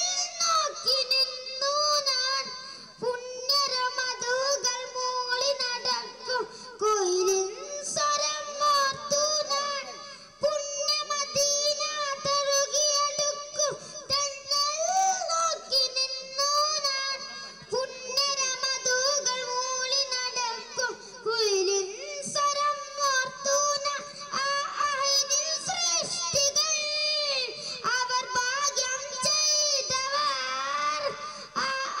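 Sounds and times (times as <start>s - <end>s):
boy singing into a microphone: 0.0s - 32.0s.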